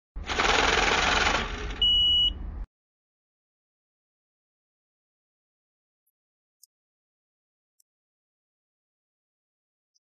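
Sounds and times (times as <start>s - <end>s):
high-pitched beep: 1.8s - 2.4s.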